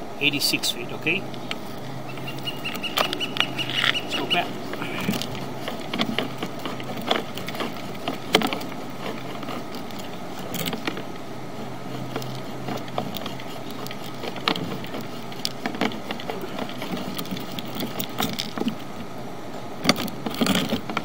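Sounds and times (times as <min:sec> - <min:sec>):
steady low hum: 0:00.0 - 0:21.0
cable winding onto reel: 0:01.5 - 0:18.9, 0:19.8 - 0:21.0
irregular clicks and knocks: 0:02.2 - 0:11.1, 0:11.9 - 0:18.9.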